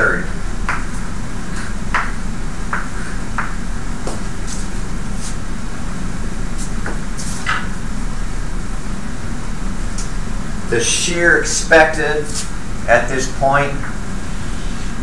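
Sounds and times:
low room hum: 0.0 - 15.0
chalk writing on blackboard: 4.4 - 5.4.

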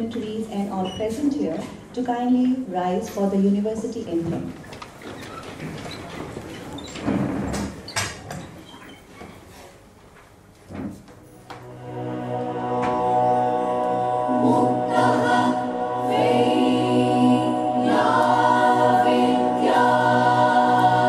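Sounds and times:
knocks and shuffling: 4.0 - 11.7
choir singing long held notes: 11.7 - 21.0.

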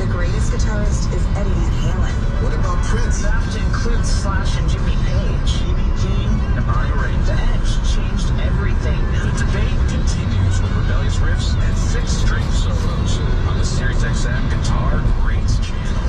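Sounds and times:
faint indistinct voices: 0.0 - 16.0
road and tyre noise in car: 0.0 - 16.0.

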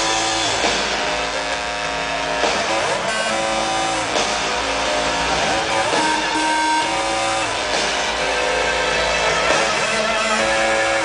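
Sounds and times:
live pop-rock band playing: 0.0 - 11.0.

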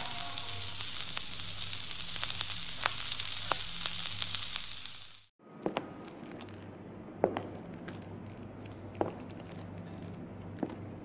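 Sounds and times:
crackling hiss: 0.0 - 5.3.

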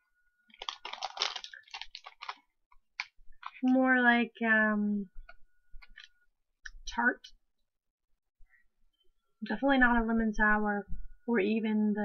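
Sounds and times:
chewing candy: 0.5 - 2.4.

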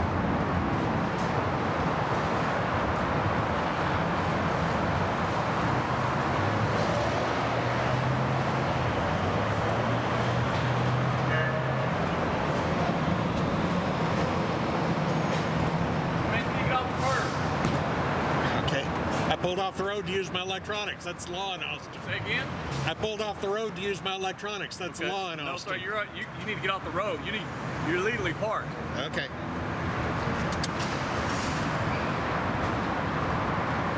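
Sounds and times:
road traffic rumble: 0.0 - 33.9.

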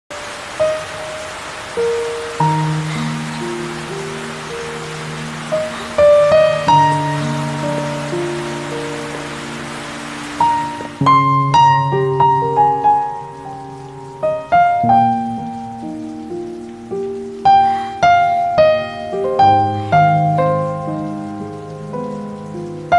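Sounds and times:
slow soft piano notes: 0.1 - 22.9
steady hiss of rain: 0.1 - 22.9
slow gentle background music: 0.3 - 22.9.

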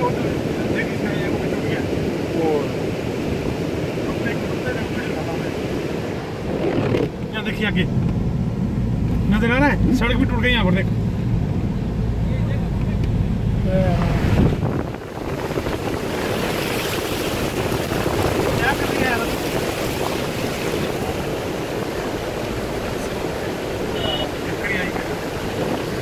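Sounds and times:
wet tyres and air rushing: 0.0 - 26.0
car cabin rumble: 6.0 - 26.0.

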